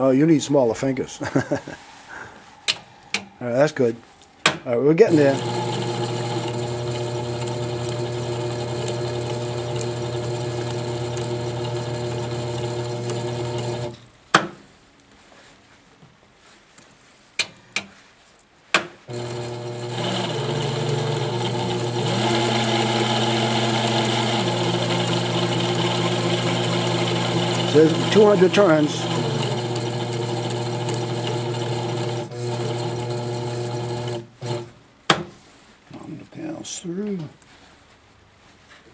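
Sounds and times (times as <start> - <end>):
winding machine running: 5.1 - 14.0, 19.1 - 34.6.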